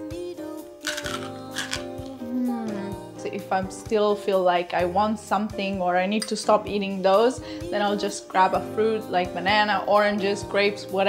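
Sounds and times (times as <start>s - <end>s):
background music: 0.0s - 11.0s
crunchy chickpeas being chewed: 0.8s - 2.0s.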